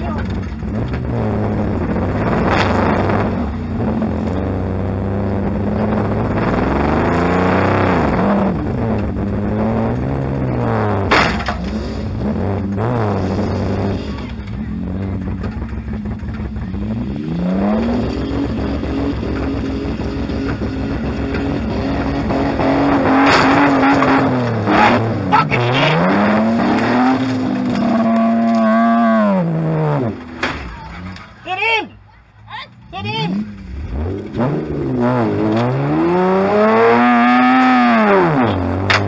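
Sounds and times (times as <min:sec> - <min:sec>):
car engine revving: 0:00.0 - 0:31.6, 0:32.8 - 0:39.0.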